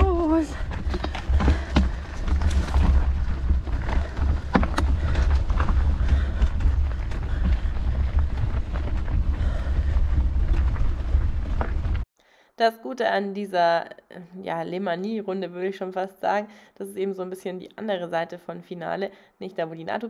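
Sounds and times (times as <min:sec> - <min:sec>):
bike tyres crunching on gravel: 0:00.0 - 0:12.0
wind buffeting microphone: 0:00.0 - 0:12.0.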